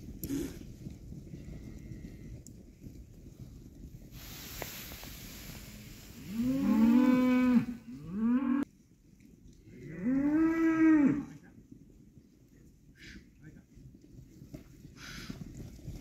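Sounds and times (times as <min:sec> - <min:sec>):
cattle mooing: 0:06.3 - 0:08.6.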